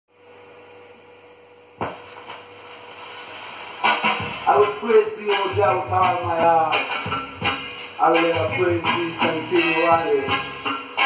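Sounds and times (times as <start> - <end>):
mains hum: 0.1 - 11.0
record surface hiss and crackles: 0.1 - 11.0
stylus dropping onto record: 1.8 - 2.5
record music: 1.8 - 11.0.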